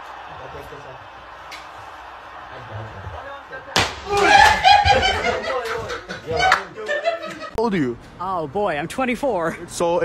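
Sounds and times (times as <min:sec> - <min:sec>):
men laughing loudly: 0:04.1 - 0:07.6.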